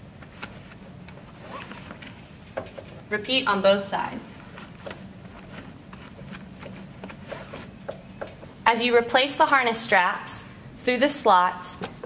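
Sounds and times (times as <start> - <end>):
low steady hum: 0.0 - 12.0
harness strap rustling and clicking: 4.4 - 8.4.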